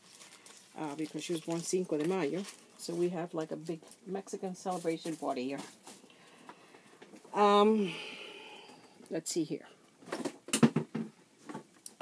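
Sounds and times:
items rustling and knocking on desk: 0.0s - 4.0s, 4.6s - 7.4s, 10.0s - 11.8s.

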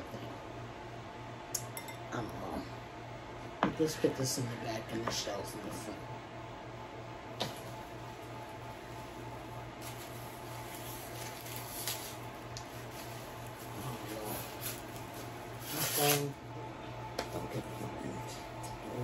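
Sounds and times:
low electrical hum: 0.0s - 19.0s
plastic wrapper crinkling: 9.8s - 16.4s.

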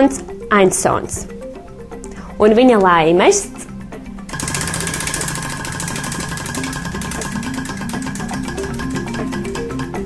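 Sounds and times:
prize wheel clicking: 4.3s - 10.0s.

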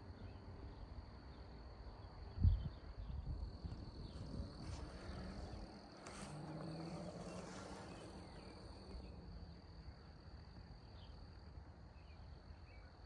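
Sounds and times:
low uneven rumble: 2.5s - 12.9s.

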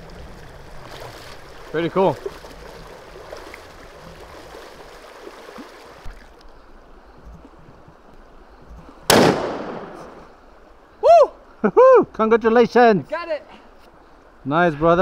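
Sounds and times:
rifle shot with echo: 9.1s - 10.3s.

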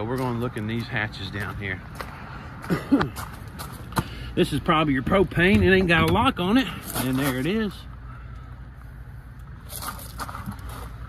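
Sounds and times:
footsteps on gravel: 0.0s - 4.2s, 9.6s - 11.0s.

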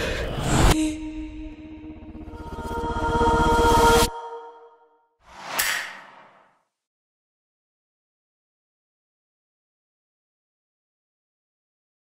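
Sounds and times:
whoosh with sharp crack: 5.3s - 6.5s.

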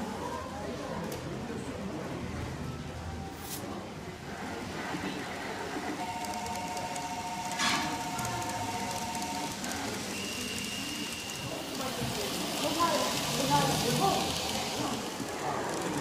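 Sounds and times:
murmur of voices: 0.0s - 16.0s.

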